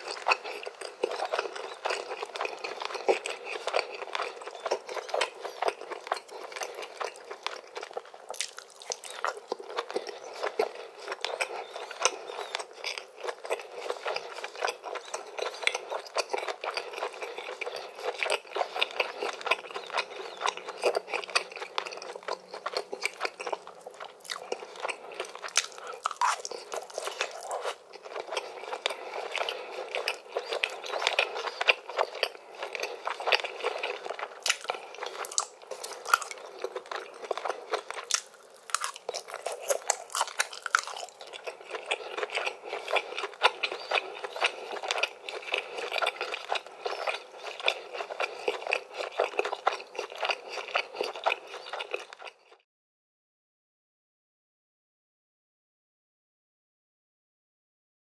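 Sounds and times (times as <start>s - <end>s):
close-up chewing and mouth smacks: 0.0s - 52.6s.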